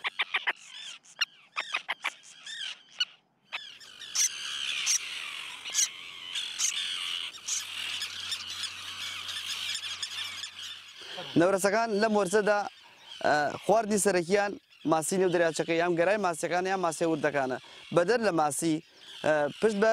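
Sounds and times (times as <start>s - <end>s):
terns calling harshly: 0.0s - 19.9s.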